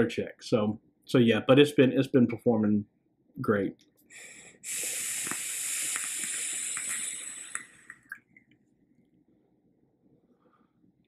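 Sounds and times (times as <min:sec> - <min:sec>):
hiss of air through airflow: 0:04.1 - 0:08.0.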